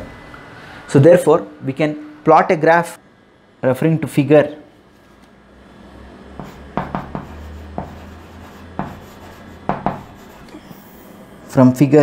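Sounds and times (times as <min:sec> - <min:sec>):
chalk tapping and scraping on board: 0:06.4 - 0:10.5.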